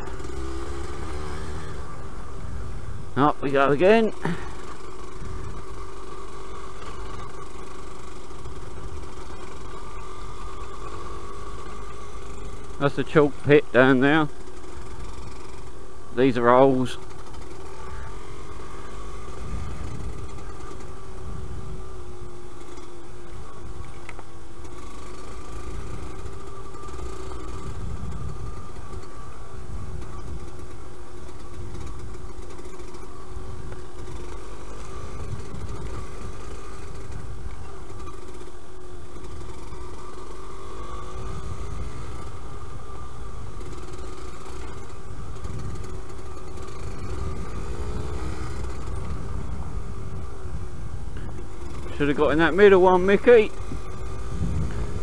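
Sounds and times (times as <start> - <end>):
two-stroke engine running: 0.0 - 55.0.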